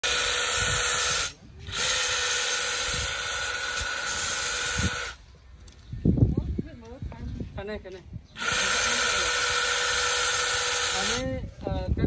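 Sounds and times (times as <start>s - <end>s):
hedge trimmer cutting shrub: 0.0s - 5.2s, 8.3s - 11.4s.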